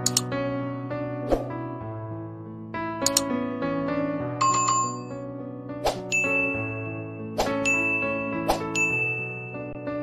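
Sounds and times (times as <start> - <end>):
sharp clicks: 0.0 - 0.3, 3.0 - 3.3
sustained keyboard chords: 0.0 - 0.6, 2.8 - 5.3.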